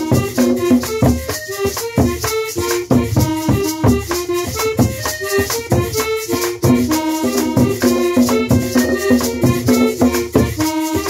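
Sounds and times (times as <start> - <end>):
accordion melody: 0.0 - 11.0
hand drum beat: 0.0 - 11.0
maracas shaking: 0.0 - 11.0.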